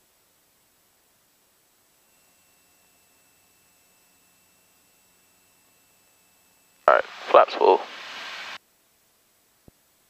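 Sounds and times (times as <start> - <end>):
person speaking: 6.9 - 8.6.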